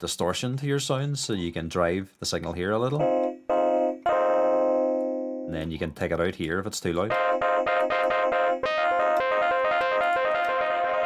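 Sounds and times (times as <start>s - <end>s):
distorted electric piano chords: 3.0s - 5.5s, 7.1s - 11.0s.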